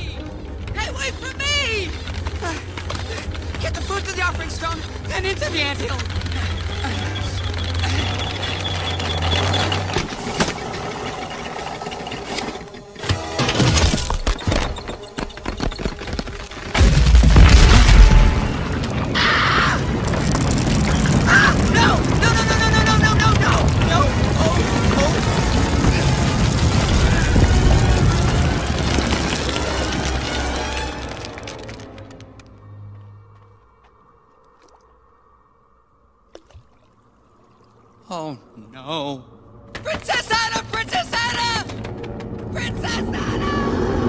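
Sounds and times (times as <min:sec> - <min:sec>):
film music: 0:00.0 - 0:15.1, 0:21.8 - 0:34.8
wooden machine rattling: 0:03.8 - 0:16.9
rumbling action sound effects: 0:15.8 - 0:32.0, 0:40.8 - 0:44.0
dramatic orchestral score: 0:21.3 - 0:33.2.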